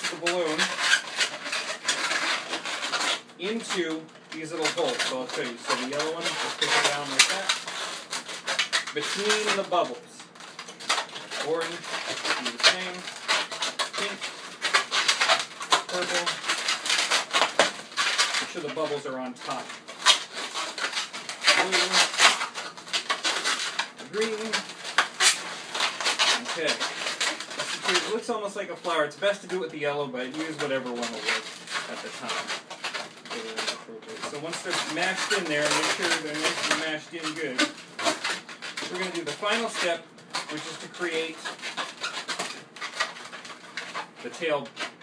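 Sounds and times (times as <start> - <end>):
balloons rubbing together: 0.0 - 45.0.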